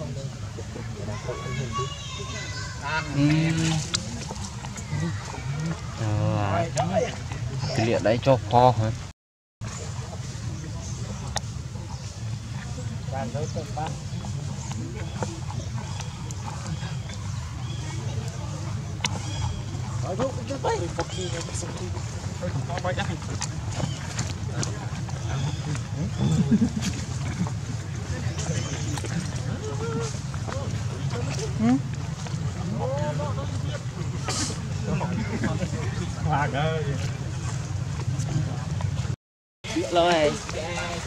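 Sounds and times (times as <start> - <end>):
people talking: 0.0 - 9.0, 17.7 - 31.9, 32.5 - 37.5, 39.7 - 41.0.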